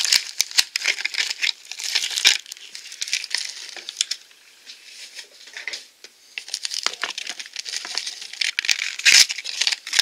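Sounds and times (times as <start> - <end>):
plastic packaging crinkling: 0.0 - 5.8, 6.4 - 10.0.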